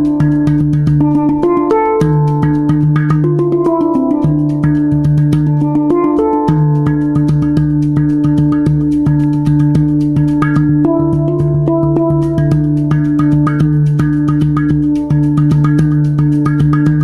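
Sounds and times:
handpan notes struck by fingers: 0.0s - 17.0s
low ringing handpan notes: 0.0s - 17.0s.

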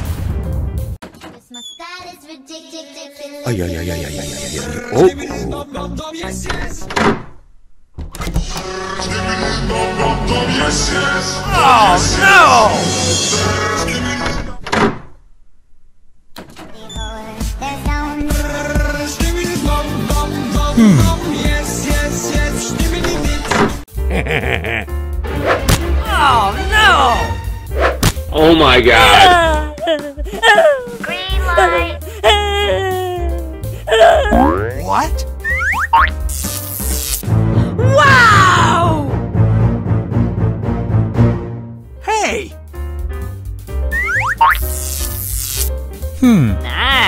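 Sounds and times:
music: 0.0s - 1.4s, 5.0s - 6.9s, 8.2s - 14.5s, 16.6s - 47.0s
springy cartoon pitch sweeps: 43.9s - 44.6s.

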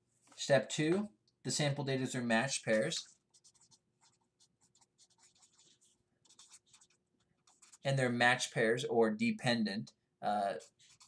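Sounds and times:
marker scratching on paper: 2.5s - 8.0s, 10.5s - 11.0s.

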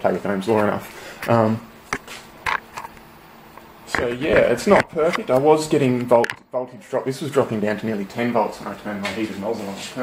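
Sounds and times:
faint clicks and knocks: 1.9s - 6.5s.

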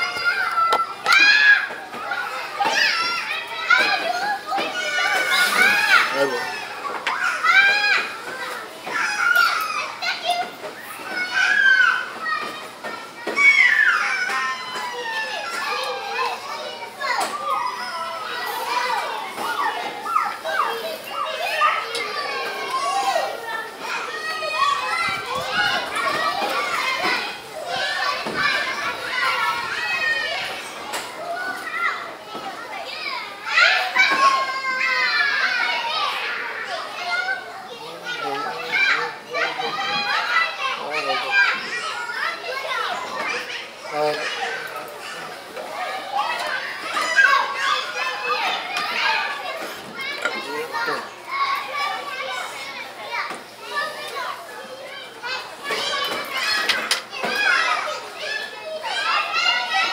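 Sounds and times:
children chattering at play: 0.0s - 59.9s
children shouting: 0.0s - 59.9s.

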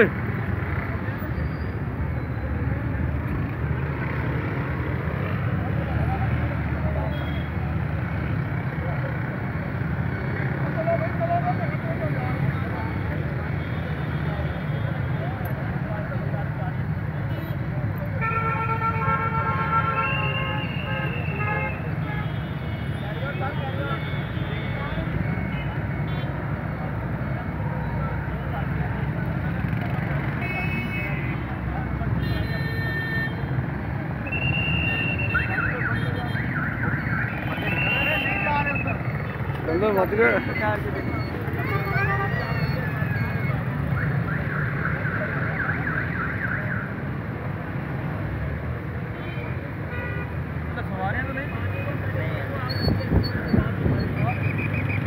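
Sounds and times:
traffic rumble: 0.0s - 55.0s.

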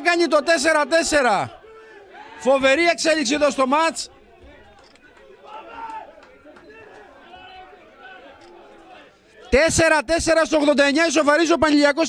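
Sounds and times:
man commentating: 0.0s - 1.6s, 2.4s - 4.1s
chatter and shouting of voices: 0.0s - 12.0s.

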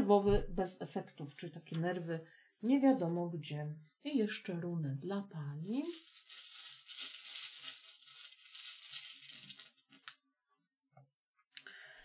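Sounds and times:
rune pieces rattling: 5.6s - 10.2s.

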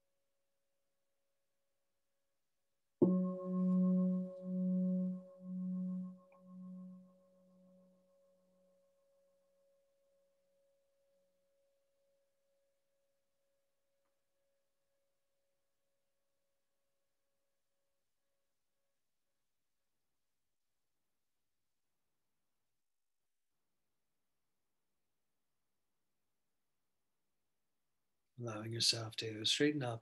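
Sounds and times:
meditation bell ringing: 3.0s - 7.9s.

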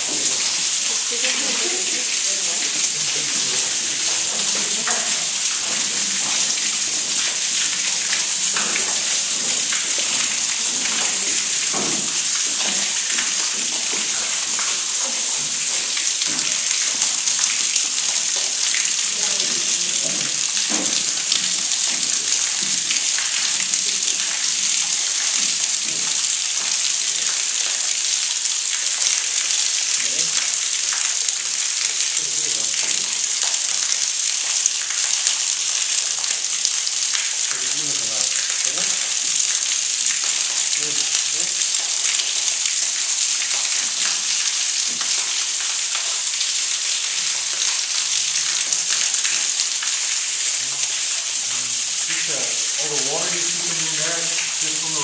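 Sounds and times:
water running down rock: 0.0s - 55.0s.

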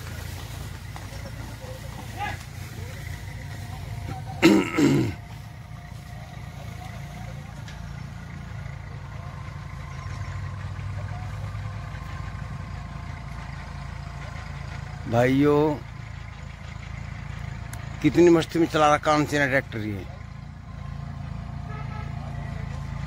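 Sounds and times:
tractor diesel engine running: 0.0s - 23.0s.

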